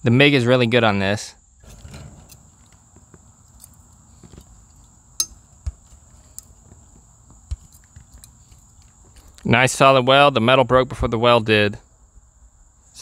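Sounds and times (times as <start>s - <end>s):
metal clicks and taps: 1.9s - 6.5s.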